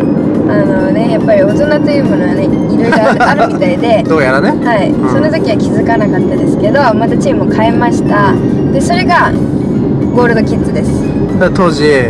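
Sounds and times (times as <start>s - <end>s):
faint background music: 0.0s - 12.0s
road noise rumble: 0.0s - 12.0s
two people talking: 0.5s - 12.0s.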